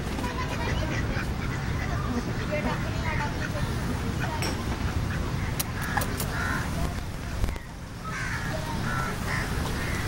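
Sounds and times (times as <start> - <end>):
birds making harsh calls: 0.1 - 10.0.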